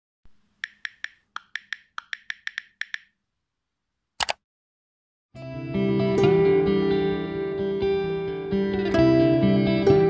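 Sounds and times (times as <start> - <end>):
keyboard keystroke clicks: 0.6 - 3.1, 4.2 - 4.4.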